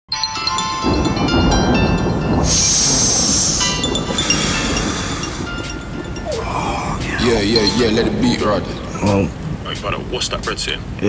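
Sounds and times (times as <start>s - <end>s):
ambient music tones: 0.1s - 11.0s
bright hissing swell: 2.2s - 9.0s.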